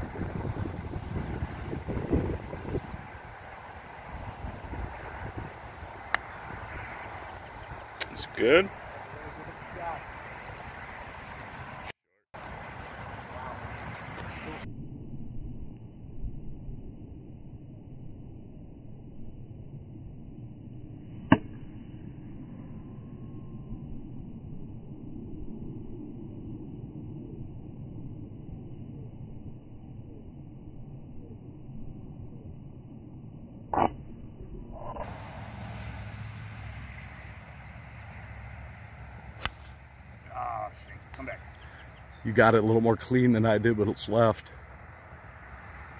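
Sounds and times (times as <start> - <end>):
muffled outdoor noise: 0.0 - 14.7, 34.7 - 45.9
golf club striking ball: 38.6 - 40.1.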